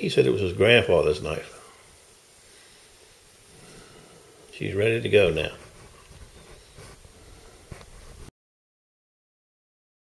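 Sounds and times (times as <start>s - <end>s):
low steady room hiss: 0.0s - 8.3s
faint handling noise: 5.0s - 8.3s.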